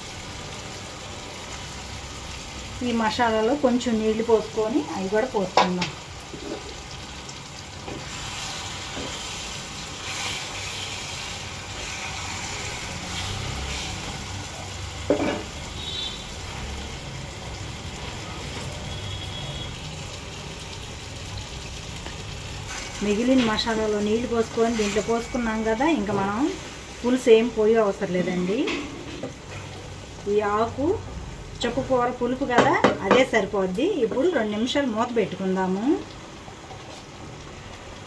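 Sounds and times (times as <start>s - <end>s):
fish sizzling in oil: 0.0s - 38.0s.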